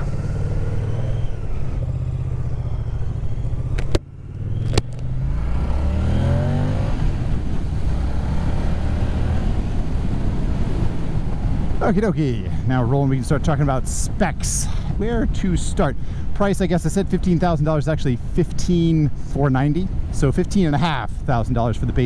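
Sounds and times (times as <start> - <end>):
motorcycle engine accelerating: 0.0 - 11.8.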